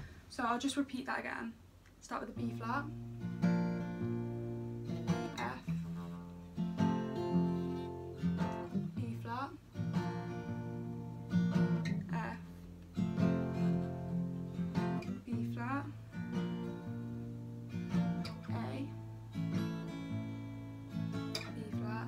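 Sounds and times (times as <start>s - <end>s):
acoustic guitar picked and strummed: 2.1s - 22.0s.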